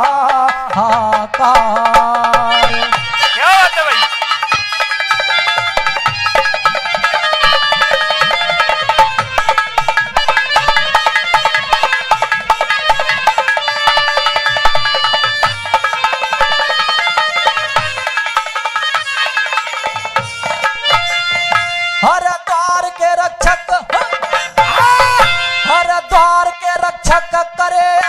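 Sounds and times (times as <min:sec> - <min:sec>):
harmonium melody: 0:00.0 - 0:28.0.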